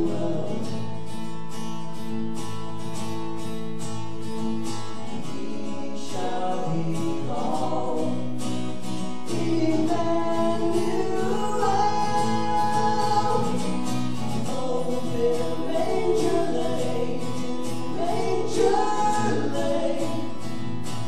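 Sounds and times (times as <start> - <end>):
person singing: 0.0 - 0.8, 9.2 - 20.4
acoustic guitar strumming: 0.0 - 21.0.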